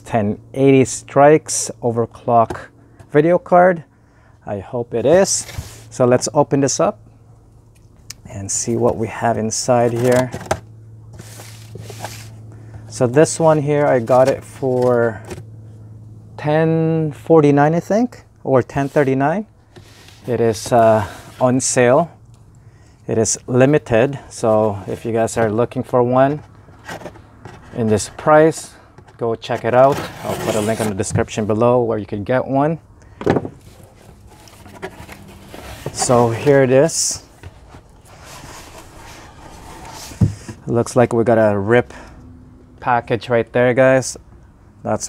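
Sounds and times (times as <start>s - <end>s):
low steady hum: 0.0s - 45.0s
cardboard box scraping rustles: 5.2s - 6.0s, 8.9s - 12.4s, 13.2s - 15.4s, 19.7s - 21.7s, 24.4s - 28.6s, 29.4s - 31.4s, 33.5s - 40.6s.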